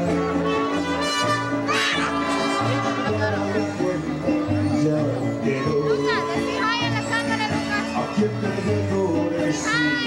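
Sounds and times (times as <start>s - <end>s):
bright brass phrase: 0.0s - 3.6s
live band with brass: 0.0s - 8.7s
bass line: 0.0s - 10.0s.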